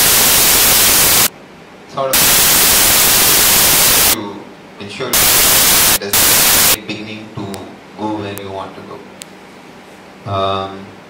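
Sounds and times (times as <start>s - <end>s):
loud static hiss: 0.0s - 11.0s.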